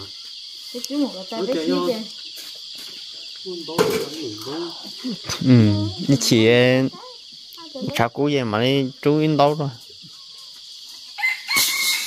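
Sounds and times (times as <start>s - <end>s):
insects chirping chorus: 0.0s - 12.0s
person speaking: 4.1s - 7.1s.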